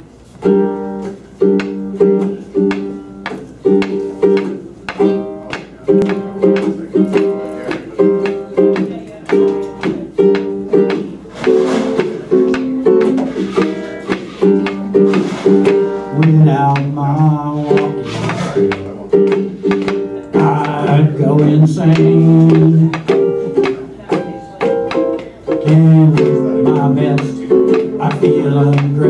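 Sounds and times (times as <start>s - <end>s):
ukulele strumming: 0.0s - 29.0s.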